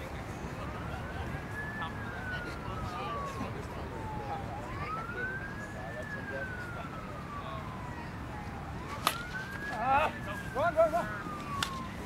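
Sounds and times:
siren wailing: 0.6 - 12.0
plastic bat hitting ball: 8.9 - 9.7.

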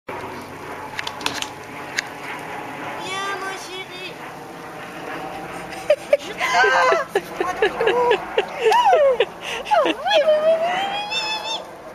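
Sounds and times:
lawn sprinkler spraying water: 0.1 - 11.9
high voice crying out: 6.2 - 7.2.

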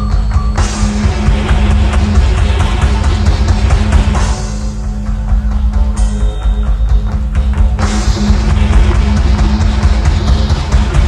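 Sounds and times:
bass guitar: 0.0 - 11.0
distorted electric guitar: 0.0 - 11.0
drum kit: 0.0 - 11.0.

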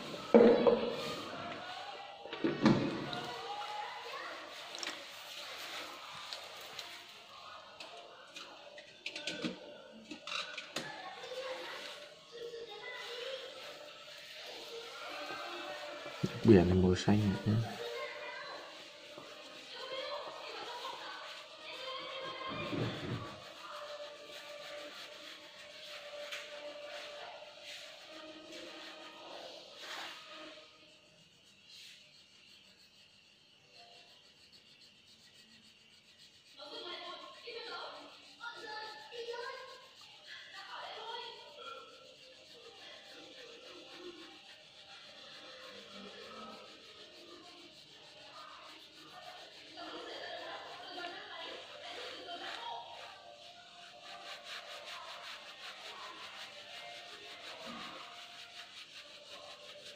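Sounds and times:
faint voices: 0.0 - 59.9
crayon rubbing on paper: 10.3 - 59.9.

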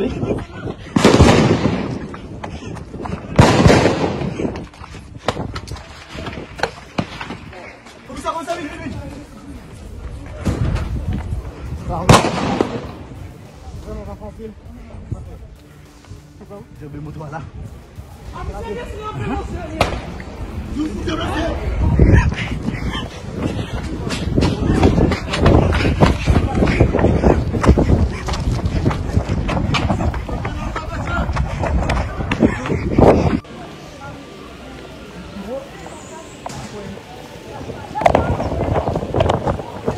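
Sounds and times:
voices talking: 0.0 - 39.9
gunshots echoing: 1.0 - 2.0, 3.4 - 4.4, 12.1 - 13.0.

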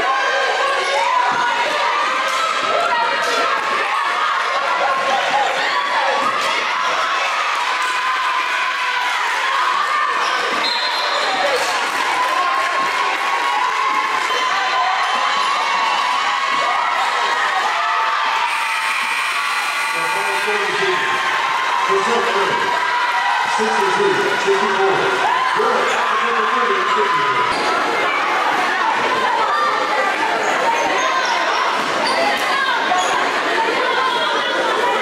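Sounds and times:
crowd cheering and shouting: 0.0 - 35.0.

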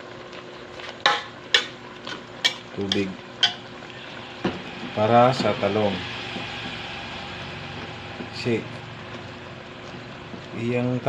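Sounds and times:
vegetables sizzling in pan: 0.0 - 11.0.

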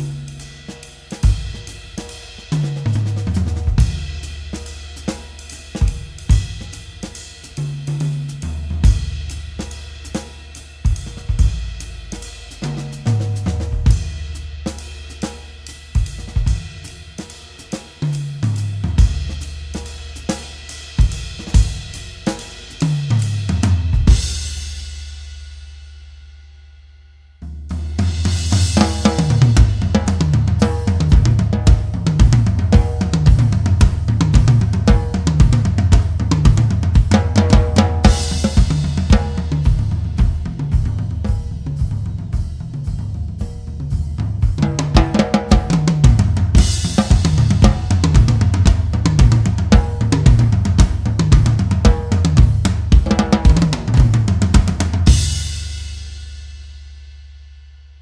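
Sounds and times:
drum kit groove with tom fills: 0.0 - 58.0.

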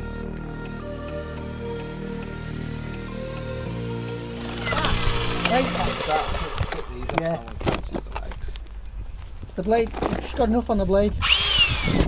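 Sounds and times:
background music: 0.0 - 7.5.

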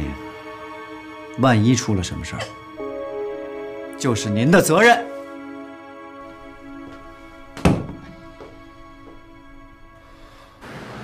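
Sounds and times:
soft background music: 0.0 - 10.6
door slamming shut: 7.5 - 8.3.

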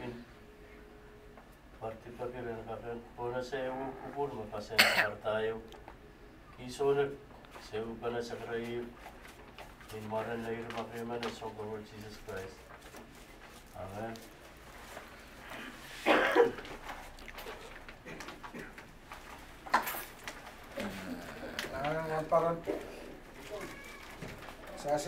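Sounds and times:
man humming: 20.7 - 22.3
man speaking slowly: 20.8 - 23.0.

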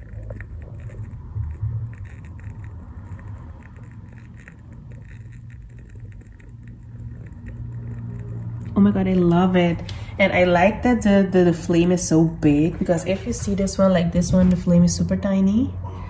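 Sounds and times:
candle crackling: 0.0 - 13.7
low steady hum: 0.0 - 16.0.

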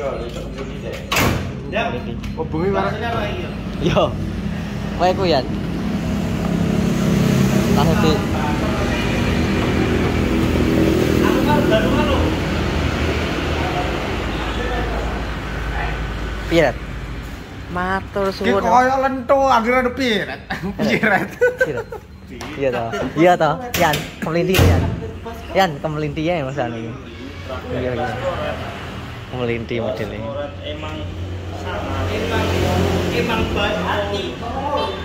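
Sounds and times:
men talking: 0.0 - 17.5, 18.3 - 35.0
men chuckling: 20.3 - 23.2.

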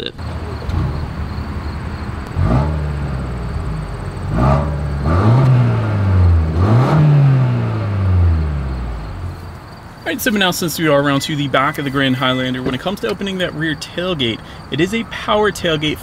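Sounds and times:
car engine revving: 0.0 - 9.8
car engine idling: 0.0 - 16.0.

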